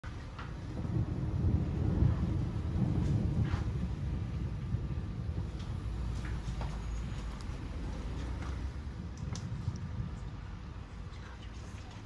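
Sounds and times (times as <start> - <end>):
distant thunder rumbling: 0.3 - 11.1.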